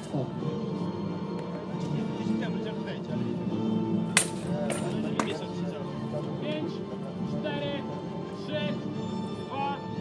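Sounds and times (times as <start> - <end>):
background music: 0.0 - 10.0
crowd voices: 0.0 - 10.0.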